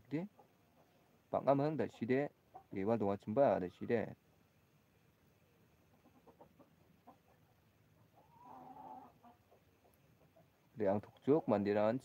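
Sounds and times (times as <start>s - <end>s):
chicken clucking: 0.2s - 4.5s, 5.7s - 11.6s.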